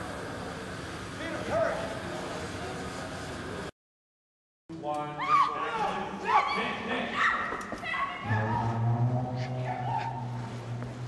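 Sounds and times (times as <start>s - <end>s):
low steady hum: 8.2s - 11.0s.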